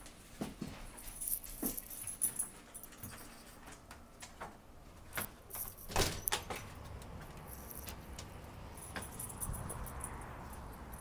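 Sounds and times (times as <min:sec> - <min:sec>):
outdoor background noise: 0:00.0 - 0:11.0
metal door latch clicks and rattles: 0:05.6 - 0:06.7.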